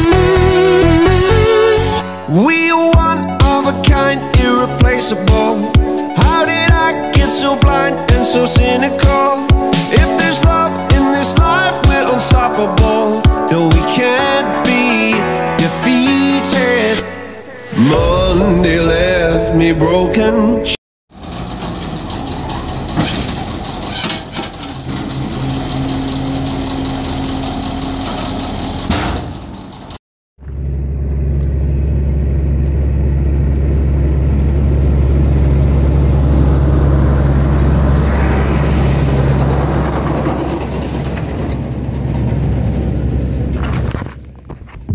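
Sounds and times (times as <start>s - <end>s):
tractor and baler humming: 0.0s - 16.5s, 21.1s - 44.4s
low machine rumble: 21.2s - 44.2s.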